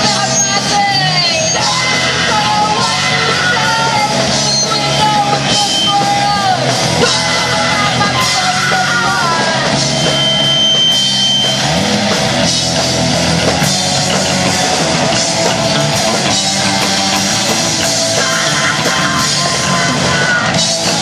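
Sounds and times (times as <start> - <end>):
drum kit: 0.0 - 21.0
electric guitars: 0.0 - 21.0
rock band playing: 0.0 - 21.0.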